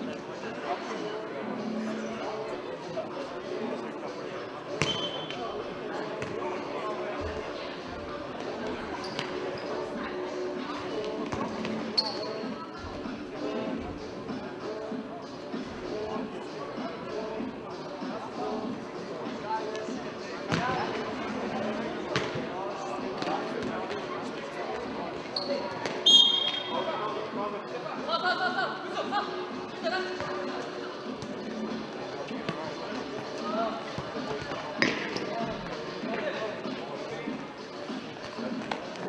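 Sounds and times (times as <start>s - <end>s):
murmur of voices: 0.0s - 39.0s.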